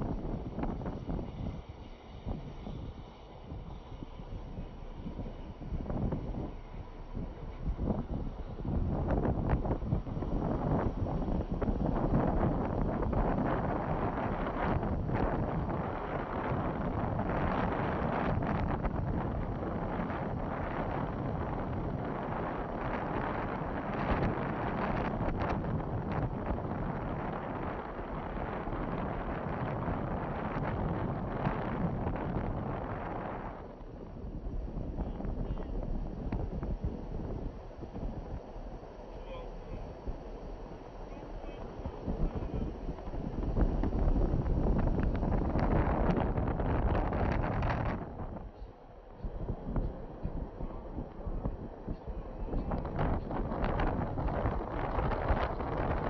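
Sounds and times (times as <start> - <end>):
car road noise: 0.0 - 56.0
wind rushing over microphone: 0.0 - 56.0.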